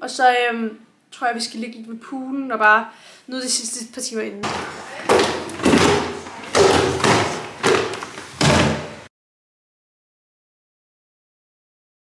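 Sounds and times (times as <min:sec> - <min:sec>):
flip-flop footsteps: 0:04.4 - 0:09.1
suitcase thudding down wooden stairs: 0:04.4 - 0:09.1.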